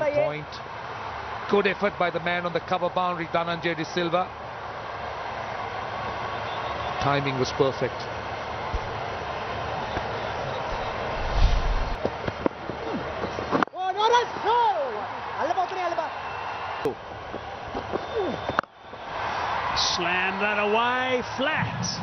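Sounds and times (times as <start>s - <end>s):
dull low thump: 8.7s - 8.9s.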